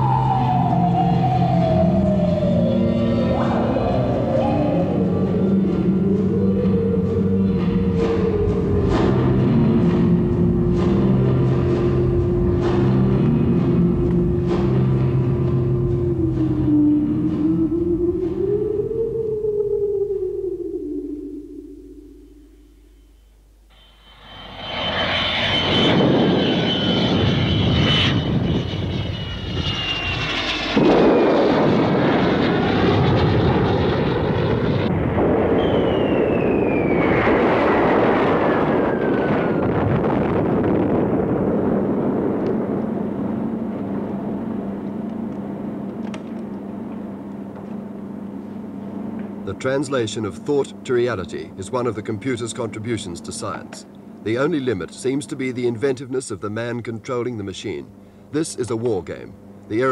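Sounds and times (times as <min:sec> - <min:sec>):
jet aircraft roaring past: 0:00.0 - 0:22.8, 0:23.7 - 0:56.4
low musical tone: 0:00.0 - 0:30.5.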